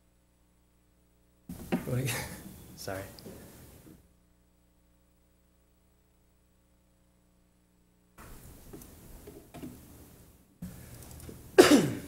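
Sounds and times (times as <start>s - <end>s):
faint room noise: 0.0s - 12.0s
person coughing: 11.6s - 12.0s.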